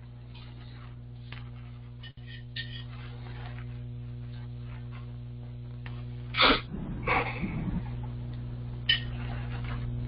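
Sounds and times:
low electrical hum: 0.0s - 10.0s
person sneezing: 6.4s - 7.9s.

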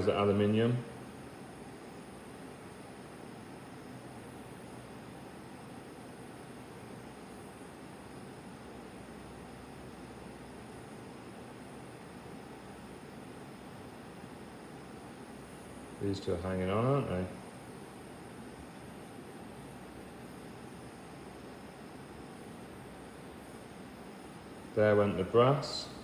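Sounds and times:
bunsen burner flame hissing: 0.0s - 26.0s.

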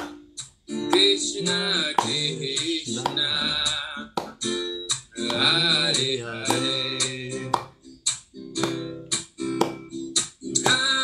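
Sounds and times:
man singing: 0.9s - 4.4s, 5.0s - 7.8s, 10.6s - 11.0s.

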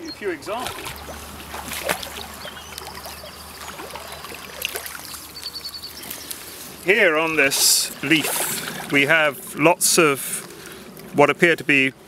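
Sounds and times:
stream flowing: 0.0s - 10.8s
reed stems rustling: 0.2s - 11.2s.

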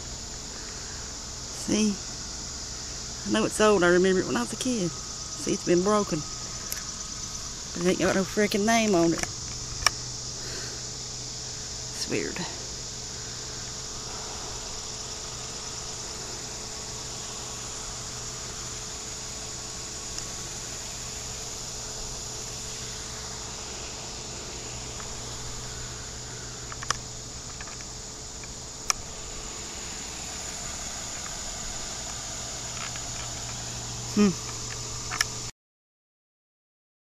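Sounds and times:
insects trilling: 0.0s - 35.5s
low steady hum: 0.0s - 35.5s.

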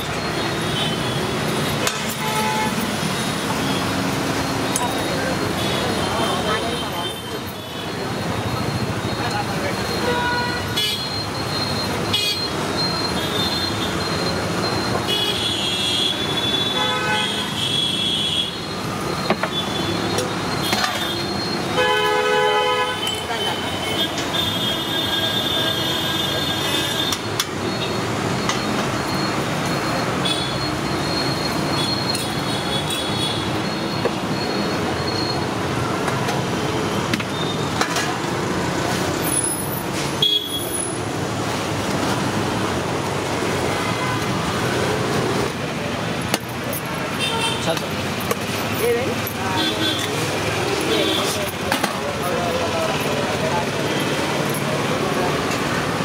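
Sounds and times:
street traffic: 0.0s - 56.0s
vehicle horns: 0.6s - 2.9s, 9.9s - 11.2s, 12.1s - 12.5s, 15.0s - 18.6s, 19.4s - 27.9s, 39.2s - 41.0s, 43.6s - 44.8s, 47.0s - 48.0s, 48.8s - 51.6s.

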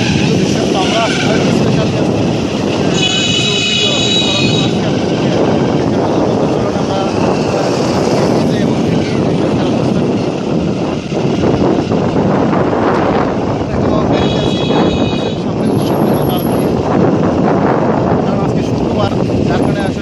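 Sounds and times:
vehicle engine and road noise: 0.0s - 20.0s
wind buffeting microphone: 0.0s - 20.0s.

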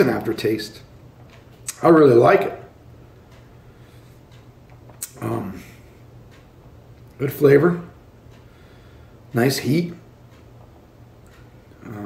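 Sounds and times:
steady low hum: 0.0s - 12.0s
man saying um: 5.0s - 5.8s, 11.8s - 12.0s.

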